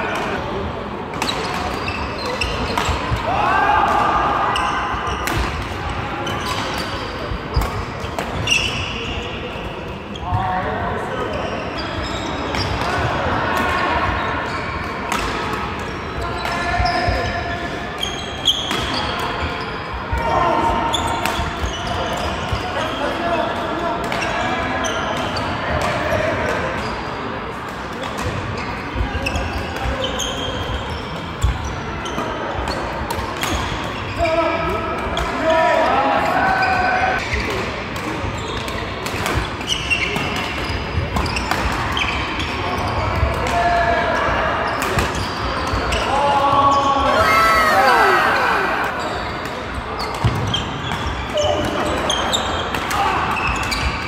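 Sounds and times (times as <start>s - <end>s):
voices and chatter: 0.0s - 54.0s.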